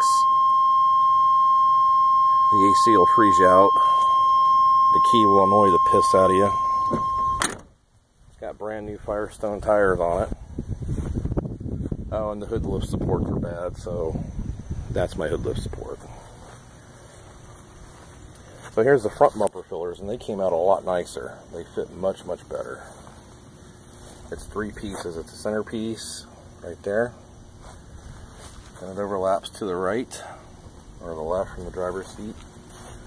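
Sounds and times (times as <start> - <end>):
high-pitched electronic warning tone: 0.0 - 7.6
faint outdoor background noise: 0.0 - 33.0.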